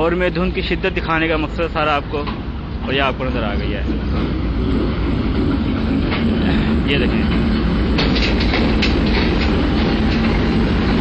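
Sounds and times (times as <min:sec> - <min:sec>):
diesel locomotive rumbling past: 0:00.0 - 0:11.0.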